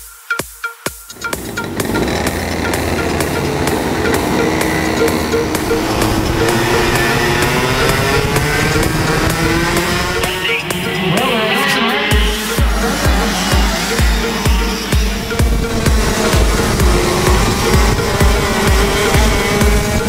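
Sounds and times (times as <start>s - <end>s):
electronic dance music: 0.0s - 20.0s
go-kart engines: 1.2s - 20.0s.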